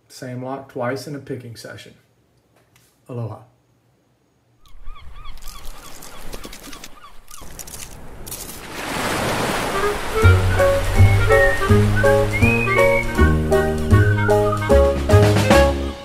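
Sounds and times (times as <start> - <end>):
surf splashing: 7.5 - 15.5
warbling chirps: 9.8 - 14.8
upbeat music with bass line: 10.2 - 16.0.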